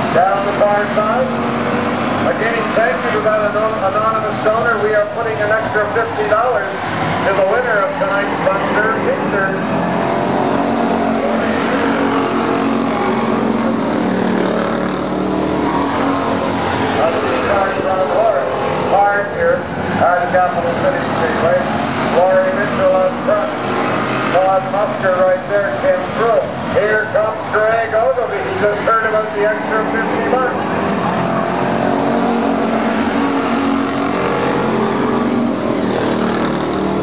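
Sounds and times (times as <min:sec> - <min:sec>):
race car engines droning: 0:00.0 - 0:37.0
person talking: 0:17.0 - 0:23.6.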